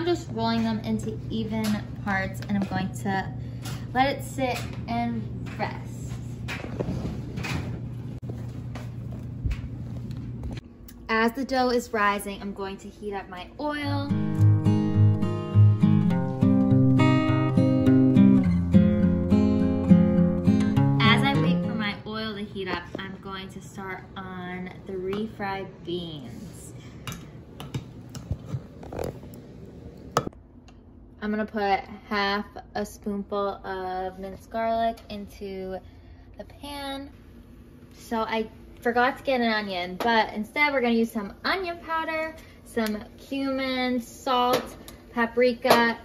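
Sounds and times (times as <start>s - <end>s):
steady low hum: 0.0s - 45.6s.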